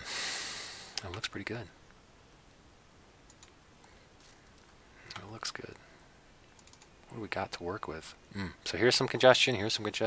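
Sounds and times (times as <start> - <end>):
computer mouse clicks: 3.3 - 3.6, 6.5 - 6.9.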